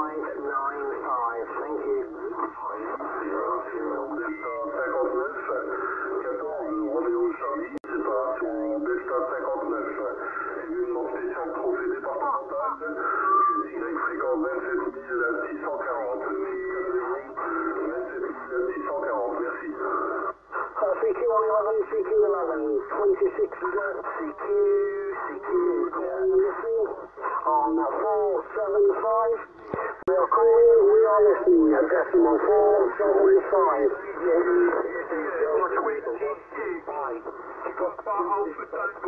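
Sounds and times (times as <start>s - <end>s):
radio voices through a speaker: 0.0s - 39.0s.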